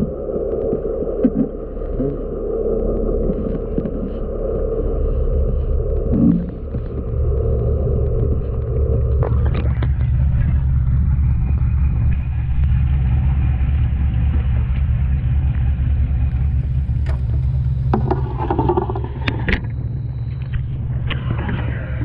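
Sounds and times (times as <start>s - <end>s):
low machine rumble: 0.0s - 22.0s.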